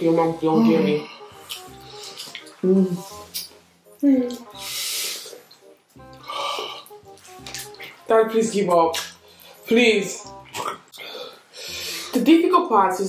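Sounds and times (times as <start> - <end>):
background music: 0.0 - 13.0
breathy hiss: 4.6 - 5.4, 11.0 - 12.2.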